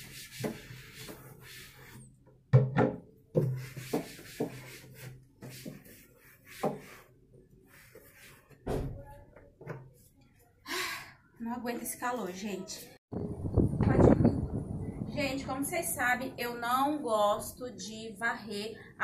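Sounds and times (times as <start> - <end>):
knocks against cabinet: 2.5 - 3.5.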